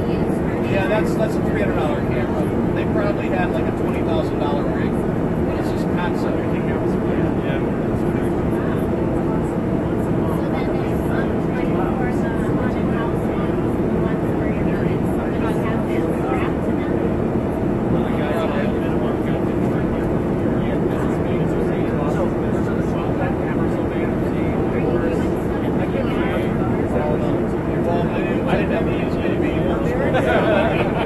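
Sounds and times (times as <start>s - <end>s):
airliner cabin engine noise: 0.0s - 31.0s
indistinct passenger conversation: 0.0s - 31.0s.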